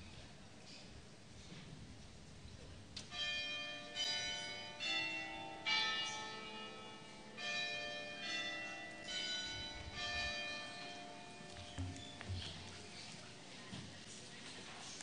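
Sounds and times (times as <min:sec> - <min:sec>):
church bells ringing a tune: 0:03.1 - 0:13.0.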